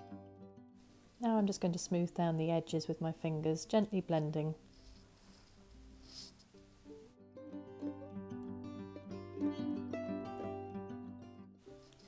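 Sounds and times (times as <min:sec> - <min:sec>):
plucked-string background music: 0:00.0 - 0:12.0
soft rub: 0:04.6 - 0:06.6.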